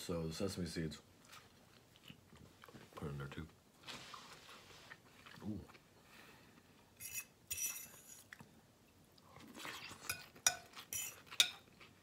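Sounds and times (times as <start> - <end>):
crunching and chewing salad: 1.2 - 5.9, 9.1 - 12.0
utensil clinking against dish: 10.0 - 11.7.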